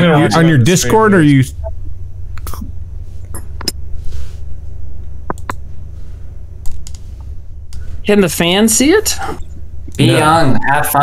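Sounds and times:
steady low hum: 0.0 - 11.0
keyboard and mouse clicks: 5.3 - 5.6, 6.6 - 7.0.

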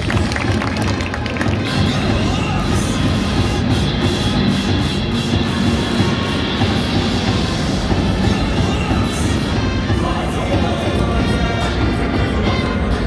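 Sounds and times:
loud music with drums: 0.0 - 13.0.

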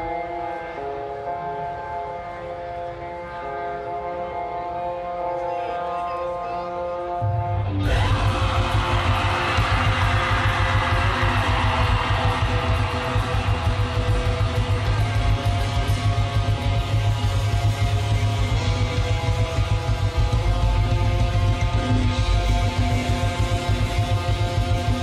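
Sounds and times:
metal band playing loudly: 7.2 - 25.0.

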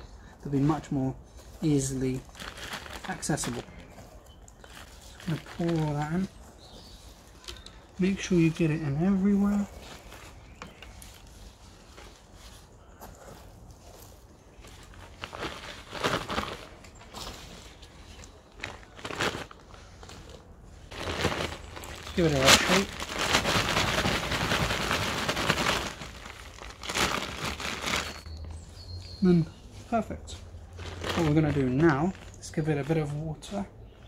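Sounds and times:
dry soil rustling and crackling: 0.0 - 34.0
plastic bag crinkling: 1.8 - 11.4, 14.5 - 28.4, 30.6 - 33.0.

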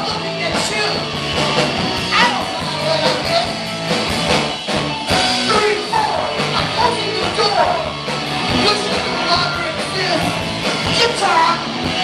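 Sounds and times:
punk rock band playing: 0.0 - 12.0
shouted vocal: 2.0 - 3.4.

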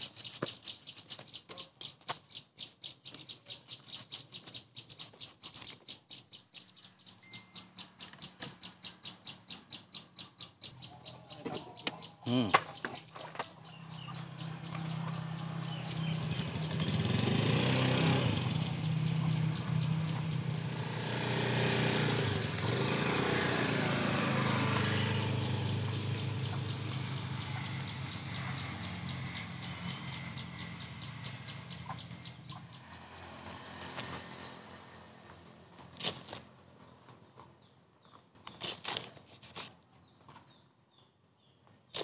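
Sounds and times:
vehicle engines passing by: 0.0 - 40.6.

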